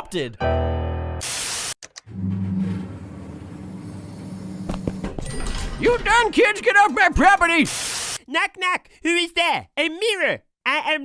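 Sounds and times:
elevator mechanical hum: 2.1s - 5.7s.

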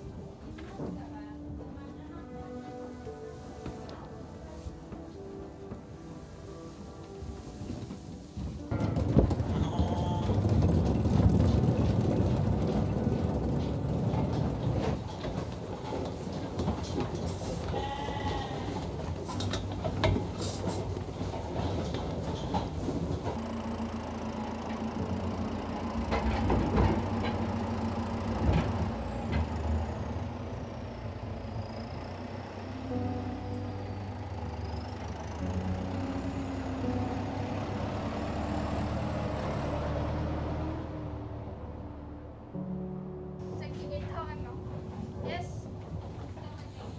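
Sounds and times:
tractor engine humming: 0.0s - 46.9s
sheep bleating: 17.8s - 18.8s.

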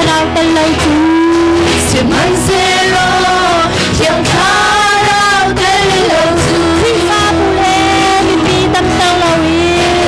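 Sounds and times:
electric bass: 0.0s - 10.0s
electric guitar: 0.0s - 10.0s
women singing into microphones: 0.0s - 10.0s.

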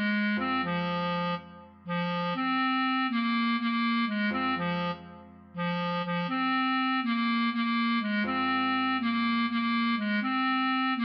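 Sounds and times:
bass clarinet melody: 0.0s - 11.0s.

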